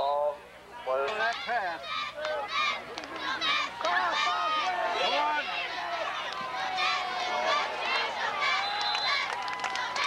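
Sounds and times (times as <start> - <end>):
people shouting: 1.8 - 9.3.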